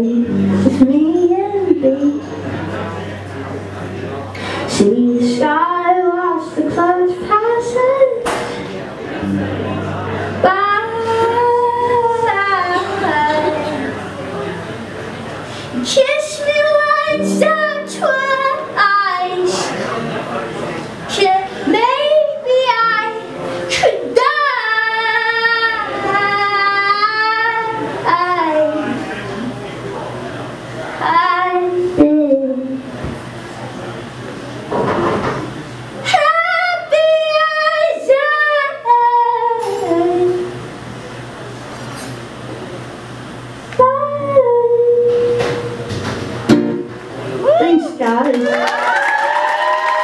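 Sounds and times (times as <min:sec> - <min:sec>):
woman singing long notes: 0:00.0 - 0:02.3, 0:15.8 - 0:19.5, 0:43.8 - 0:45.9
acoustic guitar strum: 0:00.0 - 0:03.4, 0:09.2 - 0:10.4, 0:15.7 - 0:19.6, 0:22.4 - 0:24.7, 0:39.6 - 0:40.5, 0:43.8 - 0:47.2.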